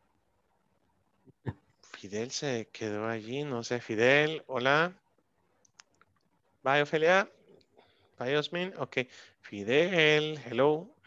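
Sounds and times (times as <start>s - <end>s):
person speaking: 1.3s - 5.0s, 8.2s - 11.0s.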